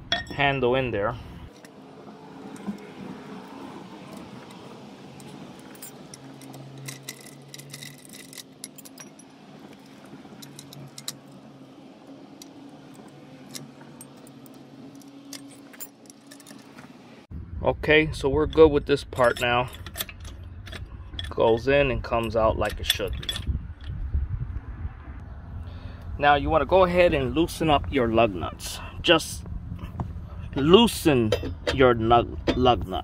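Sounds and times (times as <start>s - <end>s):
metallic clinks and taps: 5.2s - 11.3s.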